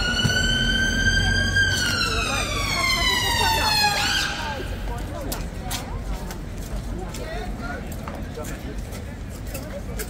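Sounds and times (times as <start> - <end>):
emergency siren wailing: 0.0 - 4.7.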